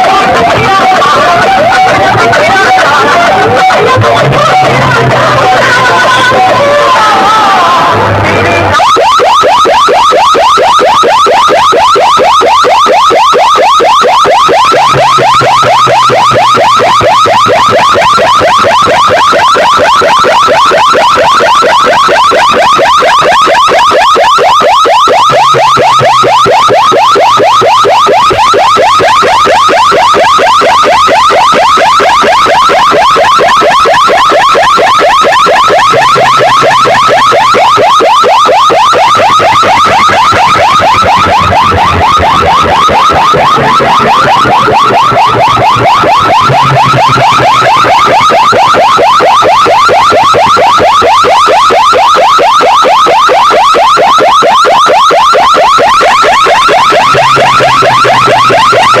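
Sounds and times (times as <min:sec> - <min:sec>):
siren-like warble from loudspeakers: 0:00.0 - 0:59.0.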